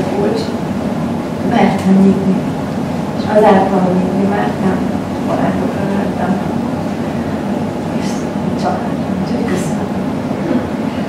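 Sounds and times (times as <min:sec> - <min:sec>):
murmur of people talking: 0:00.0 - 0:11.0
steady rumbling background noise: 0:00.0 - 0:11.0.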